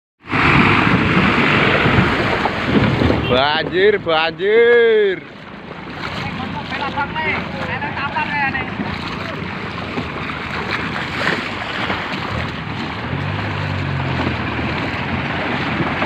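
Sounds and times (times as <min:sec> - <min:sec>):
floodwater rushing: 0:00.2 - 0:16.0
low engine hum: 0:00.2 - 0:16.0
wind buffeting microphone: 0:00.3 - 0:16.0.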